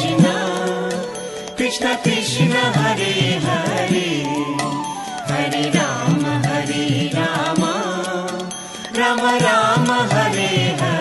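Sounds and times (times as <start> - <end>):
instrumental accompaniment: 0.0 - 11.0
melodic chanting: 0.0 - 11.0.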